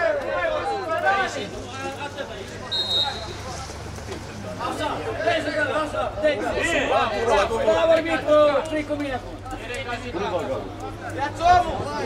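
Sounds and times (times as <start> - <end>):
men chatting and calling out: 0.0 - 12.0.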